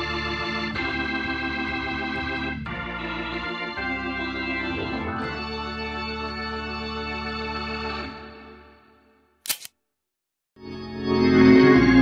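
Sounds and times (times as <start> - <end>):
sharp snap: 9.5 - 9.8.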